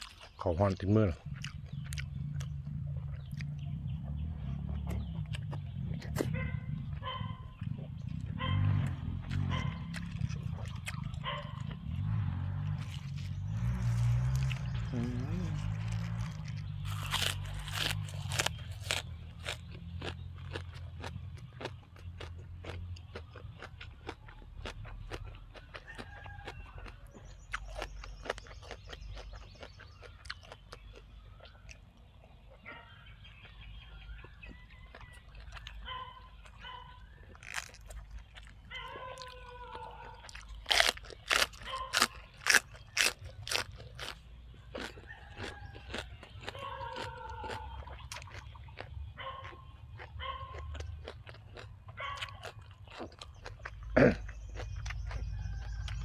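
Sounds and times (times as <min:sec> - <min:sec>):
crunchy chewing of raw vegetables: 0:00.0 - 0:56.0.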